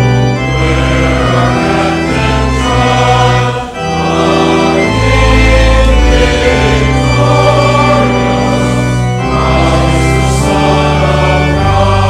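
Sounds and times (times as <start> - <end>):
congregation singing a hymn: 0.0 - 12.0
organ chords: 0.0 - 12.0.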